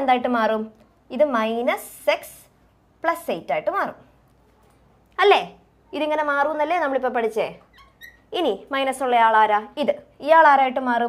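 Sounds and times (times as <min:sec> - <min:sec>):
woman speaking: 0:00.0 - 0:04.1, 0:05.1 - 0:11.0.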